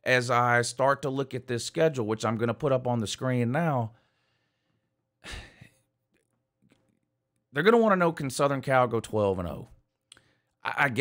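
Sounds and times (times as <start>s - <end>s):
man breathing: 3.9s - 5.9s.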